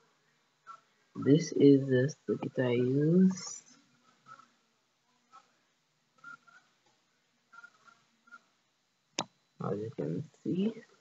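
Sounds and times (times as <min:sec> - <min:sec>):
faint high chirps: 0:06.2 - 0:06.8.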